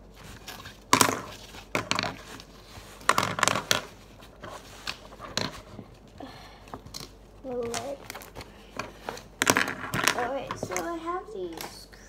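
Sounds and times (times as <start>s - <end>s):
pens rustling in pencil case: 0.0s - 11.0s.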